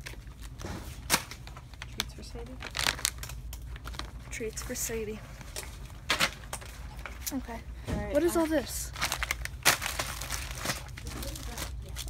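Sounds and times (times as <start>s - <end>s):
handling crinkles and clicks: 0.0s - 4.2s.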